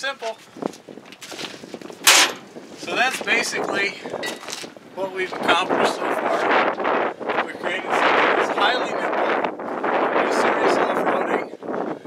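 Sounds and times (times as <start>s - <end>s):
sharp bang: 2.0s - 2.5s.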